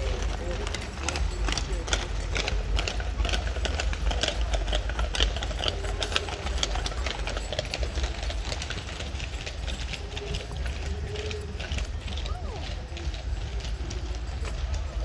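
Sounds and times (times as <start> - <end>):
hooves clip-clopping on pavement: 0.0 - 15.0.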